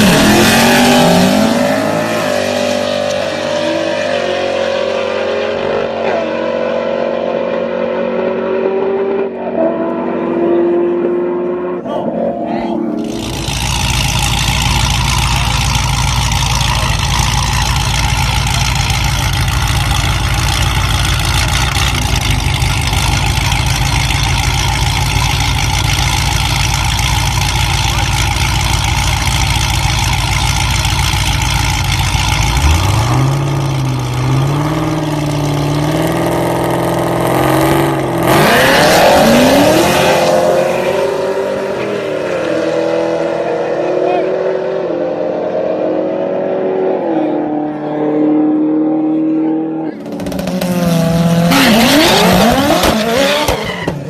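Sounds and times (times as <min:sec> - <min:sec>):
engine roar and spinning tyres: 0:00.0 - 0:54.0
engines revving: 0:00.0 - 0:54.0
race cars accelerating away: 0:00.0 - 0:54.0.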